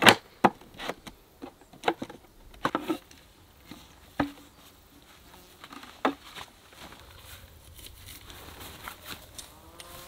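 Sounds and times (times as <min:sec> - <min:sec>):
tarp and pole rustling: 0:02.7 - 0:10.0.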